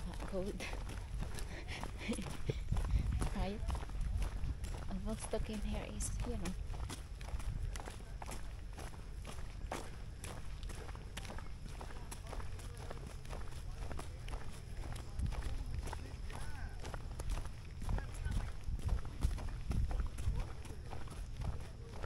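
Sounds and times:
footsteps on dirt path: 0.0 - 22.0
wind rumble on microphone: 0.0 - 22.0.

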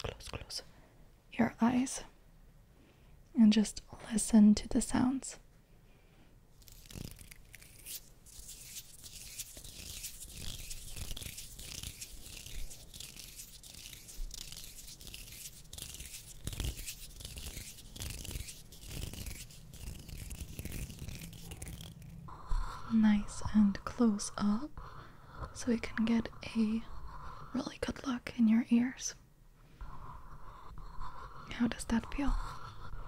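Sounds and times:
scratchy rubbing on microphone: 6.6 - 24.6, 29.8 - 33.0.

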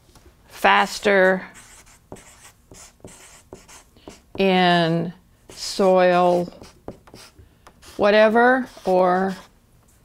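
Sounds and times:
marker writing on paper: 1.6 - 4.5, 5.5 - 9.5.

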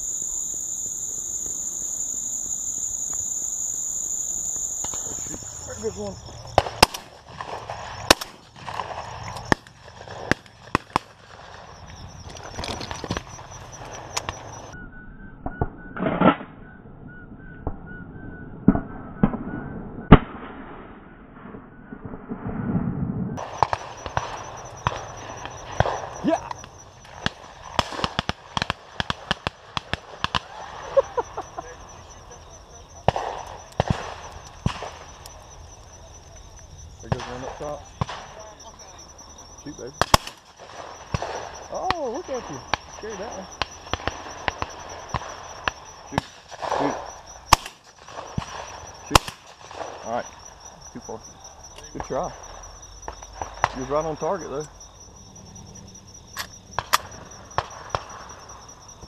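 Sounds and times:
shotgun shots: 4.8 - 11.8, 23.4 - 32.4, 33.0 - 35.2, 37.1 - 38.5, 39.8 - 50.2.

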